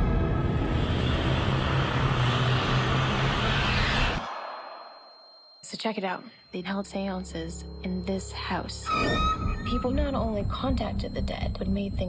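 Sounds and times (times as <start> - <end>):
dense rumbling roar: 0.0 - 4.3.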